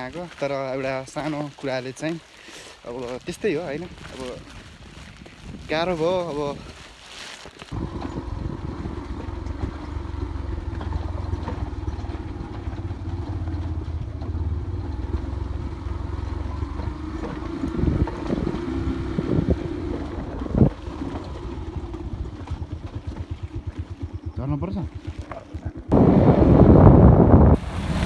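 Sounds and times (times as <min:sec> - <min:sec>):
engine running: 0:07.7 - 0:28.0.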